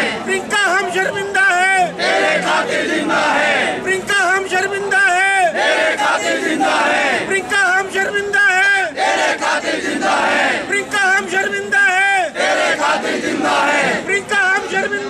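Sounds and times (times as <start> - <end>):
crowd of men chanting: 0.0 - 15.0.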